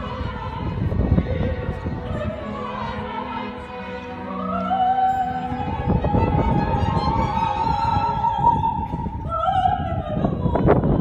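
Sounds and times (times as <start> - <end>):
operatic soprano singing: 0.0 - 11.0
symphony orchestra: 0.0 - 11.0.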